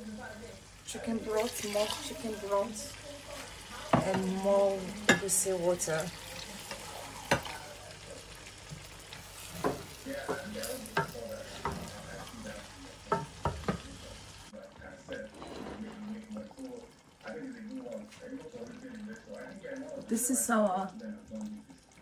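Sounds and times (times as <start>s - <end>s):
pot sizzling hiss: 0.0s - 14.6s
spoon stirring thick soup: 6.2s - 13.9s, 14.5s - 20.1s
spoon knocking against metal pot: 13.1s - 13.9s.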